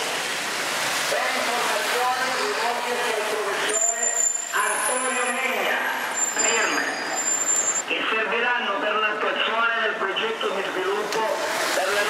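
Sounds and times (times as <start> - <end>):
road traffic on wet street: 0.0 - 12.0
people talking: 1.1 - 7.0, 7.9 - 12.0
high whistling tones: 6.2 - 7.8.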